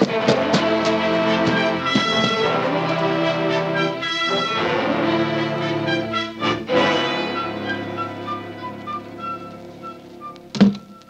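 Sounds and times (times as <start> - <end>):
orchestral bridge music: 0.0 - 11.0.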